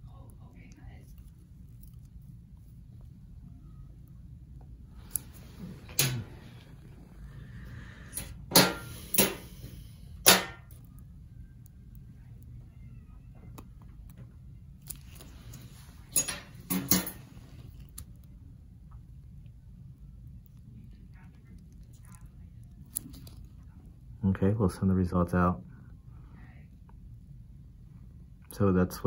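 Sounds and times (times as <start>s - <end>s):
low room background: 0.0s - 29.0s.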